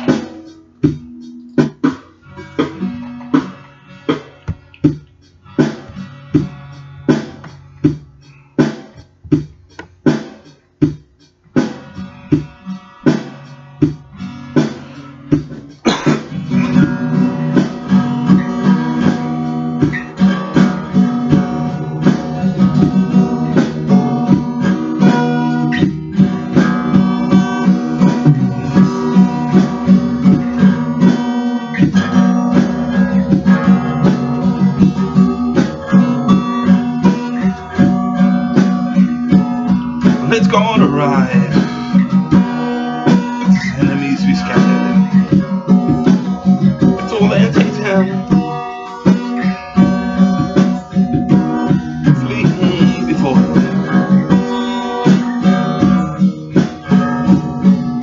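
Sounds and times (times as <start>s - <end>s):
acoustic guitar chords: 0.0s - 58.0s.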